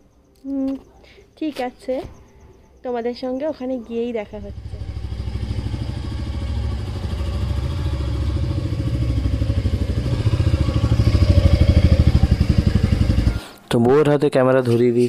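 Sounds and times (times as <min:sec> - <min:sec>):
motorcycle engine running: 0:04.3 - 0:13.4.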